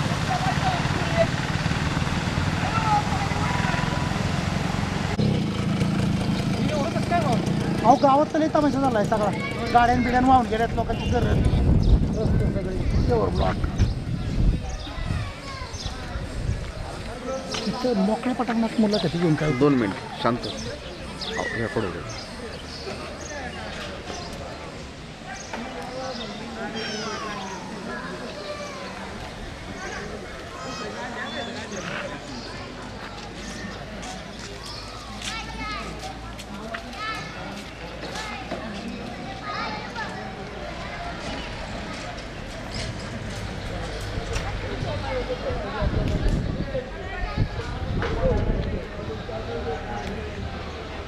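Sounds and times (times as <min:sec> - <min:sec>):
people talking outdoors: 0:00.0 - 0:51.0.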